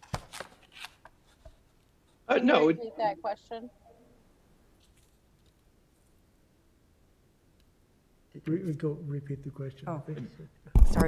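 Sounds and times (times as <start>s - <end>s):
paper rustling and tapping: 0.0s - 1.6s.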